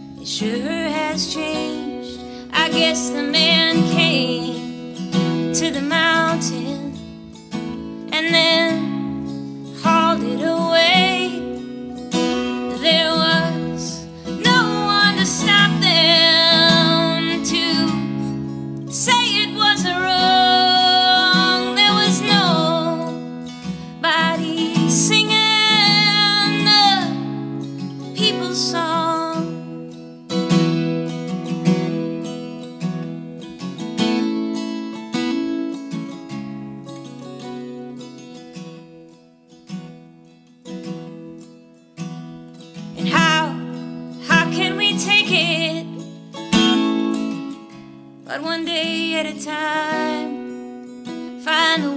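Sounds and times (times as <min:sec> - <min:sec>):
strummed acoustic guitar: 0:00.0 - 0:51.9
woman singing folk song: 0:00.0 - 0:51.9.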